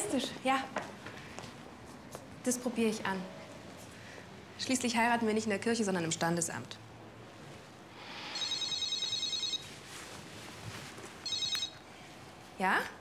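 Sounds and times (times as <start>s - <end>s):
mobile phone ringing: 8.4s - 9.8s, 11.2s - 11.9s.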